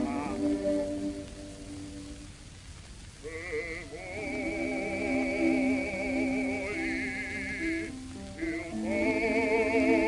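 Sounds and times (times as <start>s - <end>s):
person singing with heavy vibrato: 0.0s - 2.1s, 3.2s - 10.0s.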